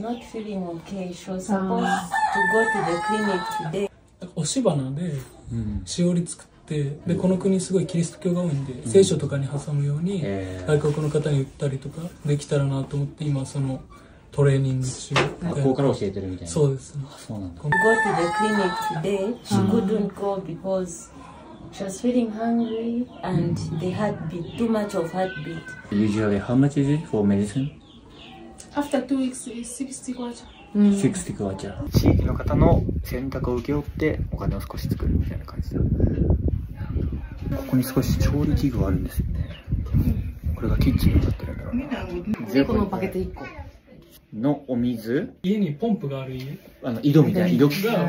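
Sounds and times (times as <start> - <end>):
rooster crowing: 1.7 - 3.9, 17.7 - 19.9
people talking: 5.5 - 5.8, 17.8 - 26.2
person talking: 19.5 - 20.1.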